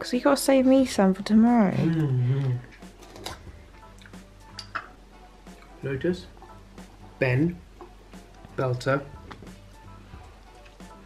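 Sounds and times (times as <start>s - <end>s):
faint background music: 0.0s - 11.0s
glass jar opening: 4.6s - 5.0s.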